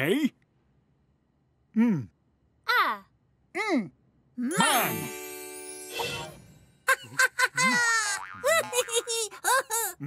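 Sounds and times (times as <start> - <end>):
wordless character noises: 4.5 - 6.4.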